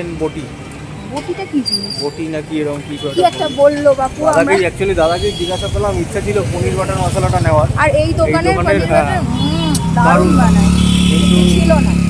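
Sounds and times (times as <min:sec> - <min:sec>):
vehicle engine humming: 0:00.0 - 0:12.0
people talking: 0:02.4 - 0:12.0.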